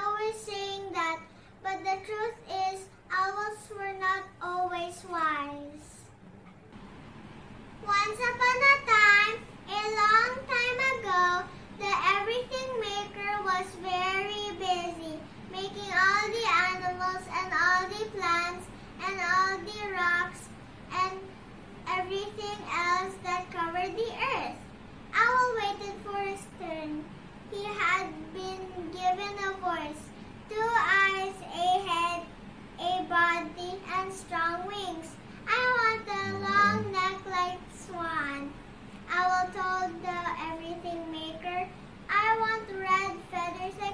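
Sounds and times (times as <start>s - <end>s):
girl singing a melody: 0.0s - 6.2s, 7.8s - 43.9s.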